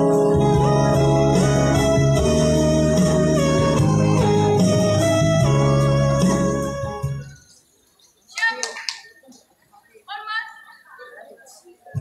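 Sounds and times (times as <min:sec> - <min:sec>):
electronic organ chords: 0:00.0 - 0:07.5.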